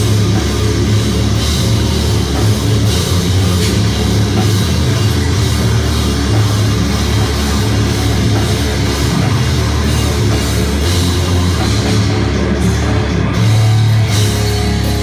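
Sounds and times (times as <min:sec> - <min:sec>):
death metal band playing: 0:00.0 - 0:15.0.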